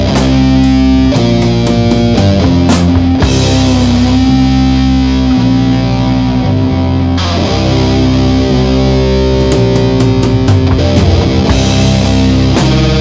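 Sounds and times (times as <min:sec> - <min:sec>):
drum hits: 0:00.0 - 0:04.2, 0:09.4 - 0:13.0
distorted guitar and bass chords: 0:00.0 - 0:13.0.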